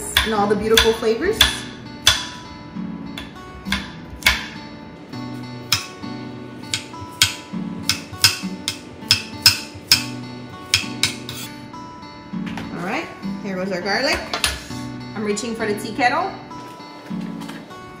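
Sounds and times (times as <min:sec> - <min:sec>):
acoustic guitar music: 0:00.0 - 0:18.0
knife chopping on cutting board: 0:10.7 - 0:11.5.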